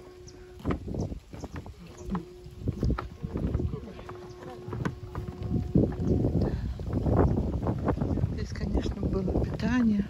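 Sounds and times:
faint low drone: 0.0s - 9.6s
footsteps on wooden boardwalk: 0.0s - 10.0s
people talking: 1.5s - 6.6s, 8.1s - 10.0s.

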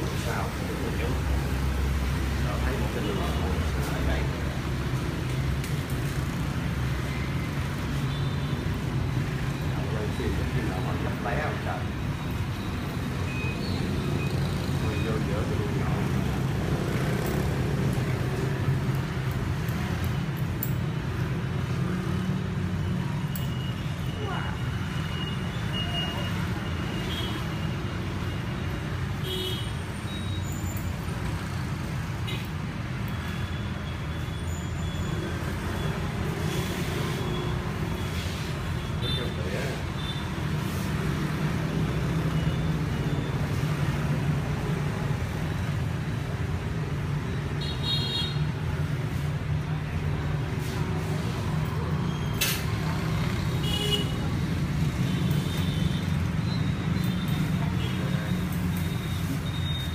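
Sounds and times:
low rumble of street traffic: 0.0s - 59.9s.

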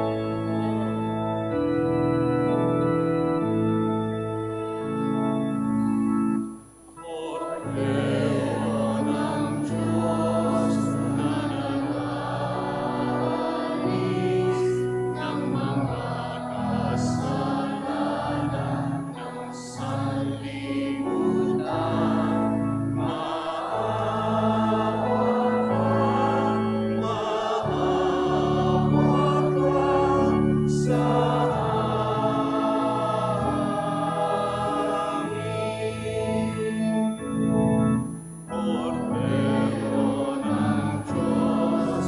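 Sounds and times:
choir singing a hymn: 0.0s - 42.0s
organ accompaniment: 0.0s - 42.0s.

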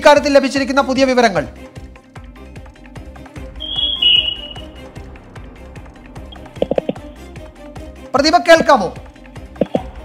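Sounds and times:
ticking beat over low notes: 3.4s - 7.4s
brief high tone: 3.6s - 4.8s.

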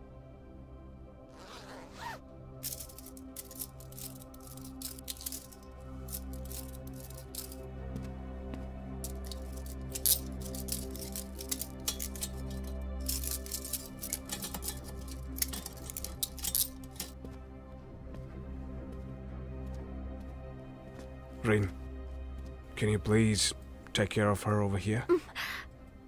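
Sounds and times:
soft background music with drone: 0.0s - 26.0s
bag zipped open: 1.3s - 2.2s.

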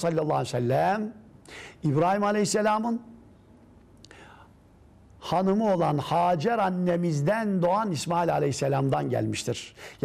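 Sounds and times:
faint breath drawn in: 4.1s - 4.6s.

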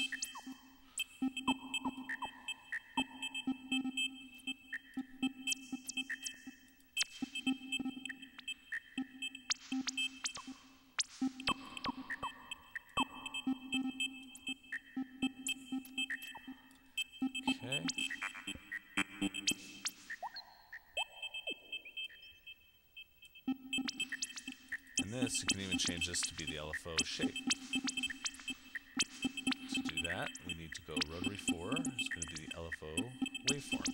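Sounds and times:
glitchy electronic drum pattern: 0.0s - 0.6s, 1.2s - 4.0s, 5.0s - 21.8s, 23.5s - 33.9s.

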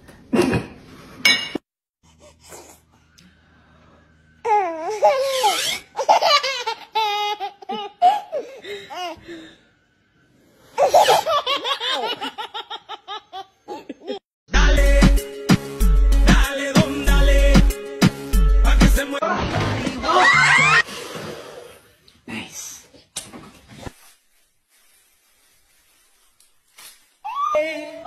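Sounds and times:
baby laughing: 4.5s - 9.2s, 10.8s - 14.2s.

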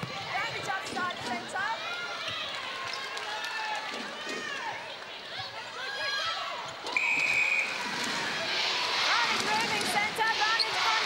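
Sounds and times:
crowd noise: 0.0s - 11.0s
whistle blast: 6.9s - 7.8s.

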